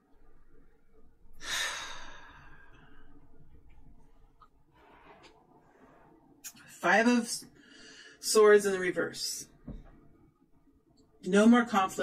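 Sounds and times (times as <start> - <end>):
woman sighing: 1.4 - 3.1.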